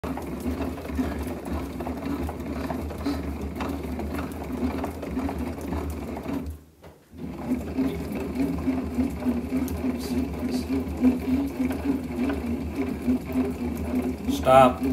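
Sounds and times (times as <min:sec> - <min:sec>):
bat rolling machine whirring: 0:00.0 - 0:14.9.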